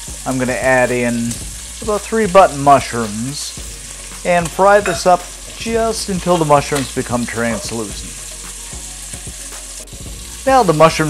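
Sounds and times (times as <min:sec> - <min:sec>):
bacon and mushrooms sizzling: 0:00.0 - 0:11.0.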